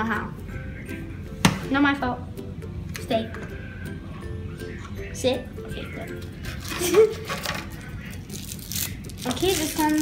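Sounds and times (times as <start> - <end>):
foil wrapper crinkling: 6.6 - 10.0.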